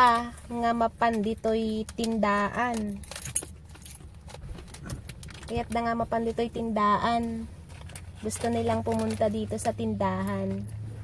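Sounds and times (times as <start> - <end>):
hands rummaging through handbag: 0.0 - 6.5, 7.2 - 10.6
steady low hum: 0.0 - 11.0.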